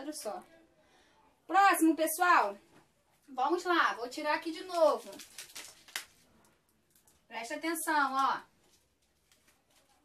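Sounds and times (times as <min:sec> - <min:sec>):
paper rustling and tapping: 0:04.4 - 0:07.2, 0:08.0 - 0:10.0.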